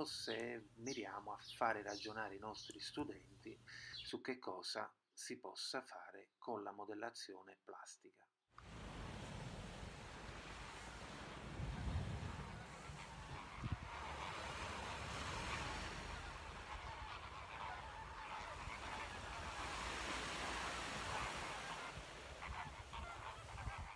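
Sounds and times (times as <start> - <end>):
wind rumble on microphone: 8.6 - 23.9
geese honking: 10.0 - 23.9.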